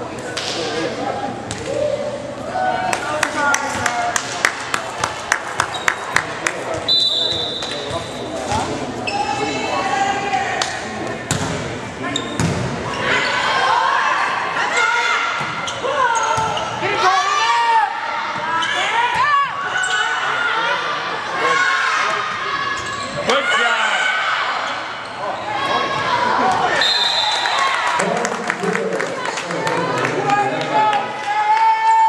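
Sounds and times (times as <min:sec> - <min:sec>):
volleyball hits: 0:10.6 - 0:12.8.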